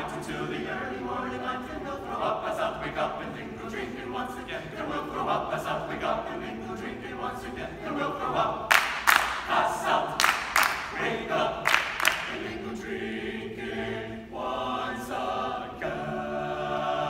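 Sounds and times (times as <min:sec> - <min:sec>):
men's choir singing a cappella: 0:00.0 - 0:17.0
hand claps: 0:08.7 - 0:09.6, 0:10.2 - 0:11.0, 0:11.6 - 0:12.4.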